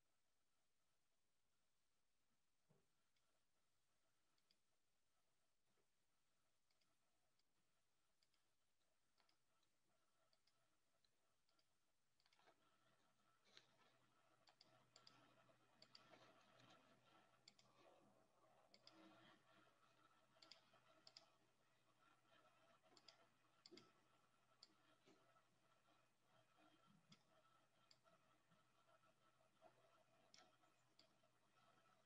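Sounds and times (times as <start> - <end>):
computer mouse clicks: 9.1 - 32.0.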